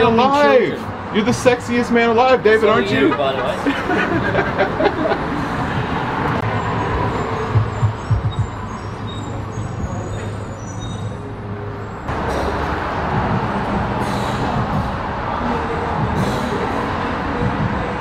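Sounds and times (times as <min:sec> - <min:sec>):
road noise: 0:00.0 - 0:18.0.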